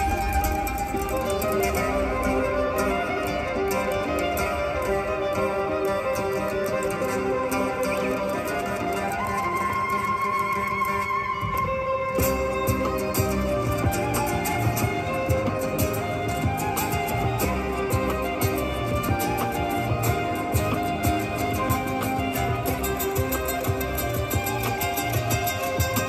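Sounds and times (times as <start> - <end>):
acoustic guitar accompaniment: 0.0 - 26.0
violin melody: 0.0 - 26.0.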